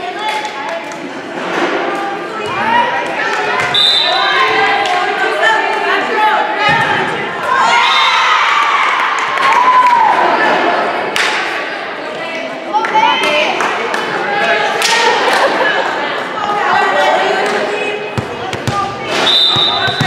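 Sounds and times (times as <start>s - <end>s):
crowd shouting and cheering: 0.0s - 20.0s
referee's whistle blast: 3.7s - 4.4s, 19.2s - 20.0s.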